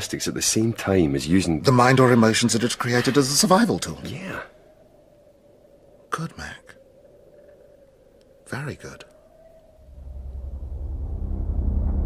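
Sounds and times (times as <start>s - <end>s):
faint steady hum: 0.0s - 12.0s
low rumbling drone: 9.8s - 12.0s.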